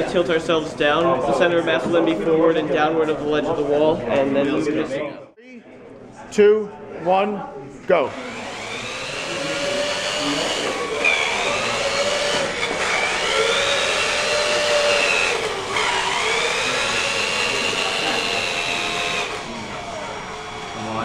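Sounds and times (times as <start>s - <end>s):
robot electric motors whining: 8.1s - 21.0s.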